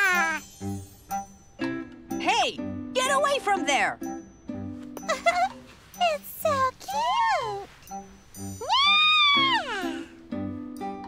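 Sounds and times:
light background music: 0.0 - 11.0
cartoon kitten meowing: 8.6 - 10.1.

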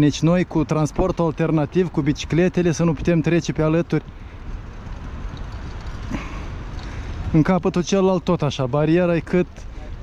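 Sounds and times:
faint street noise: 0.0 - 10.0
wind rumbling on microphone: 0.0 - 10.0.

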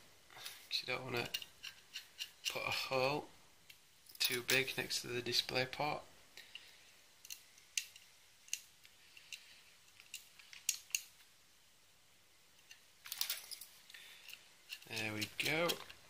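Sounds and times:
rustling handling noise: 13.0 - 16.0.

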